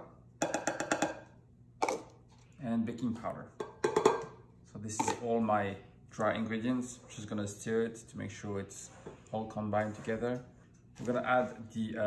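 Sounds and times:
plastic container tapping glass bowl: 0.4 - 2.1, 3.6 - 5.2.

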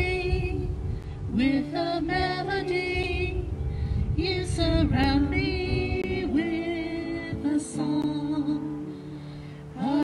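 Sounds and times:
group singing a hymn: 0.0 - 10.0.

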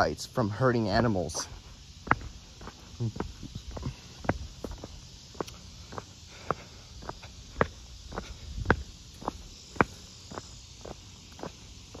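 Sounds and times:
faint steady high hiss: 0.0 - 12.0
footsteps on concrete sidewalk: 0.0 - 12.0.

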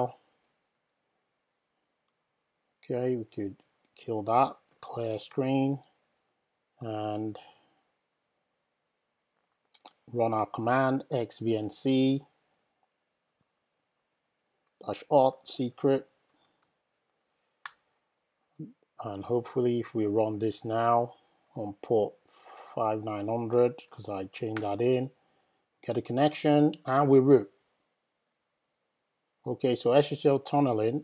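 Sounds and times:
person speaking: 0.0 - 0.3, 2.7 - 6.0, 9.7 - 12.4, 14.7 - 16.4, 18.6 - 25.2.

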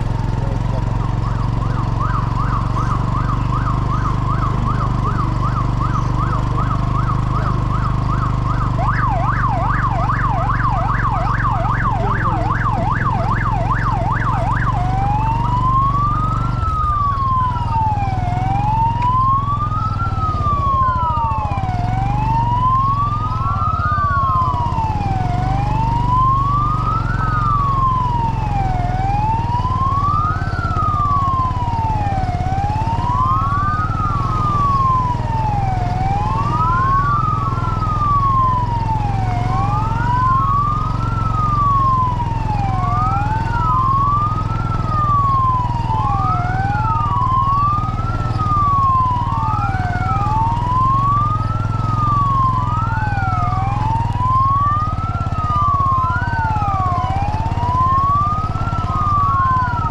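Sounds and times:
low engine hum: 0.0 - 59.9
vehicle siren wailing: 0.0 - 59.9.

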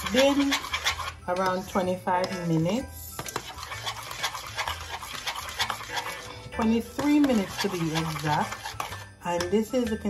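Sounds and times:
porridge stirred in metal pot: 0.0 - 10.0.

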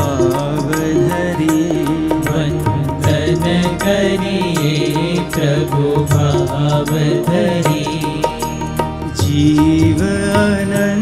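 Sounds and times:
devotional music: 0.0 - 11.0
tabla rhythm: 0.0 - 11.0.

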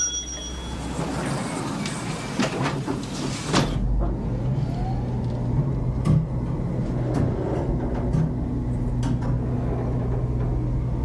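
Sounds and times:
low motor hum: 3.8 - 11.0.

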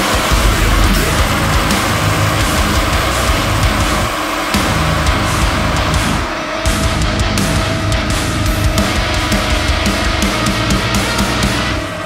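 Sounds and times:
metal band playing: 0.0 - 12.0.

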